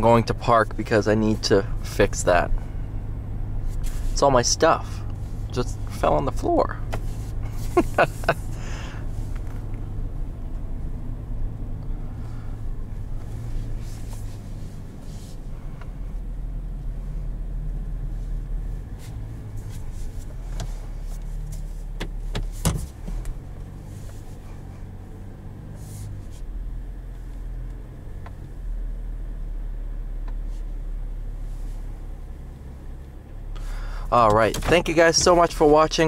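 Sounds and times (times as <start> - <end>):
diesel engine low hum: 0.0 - 36.0.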